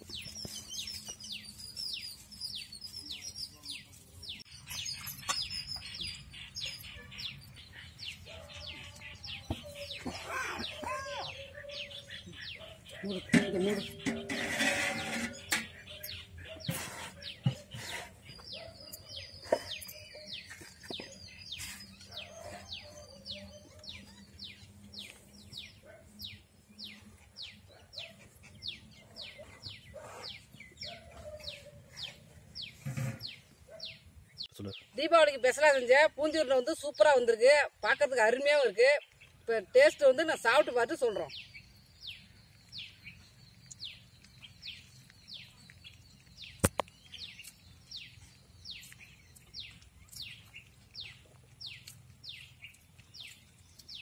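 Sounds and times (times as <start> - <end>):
birds chirping: 0.0 - 54.0.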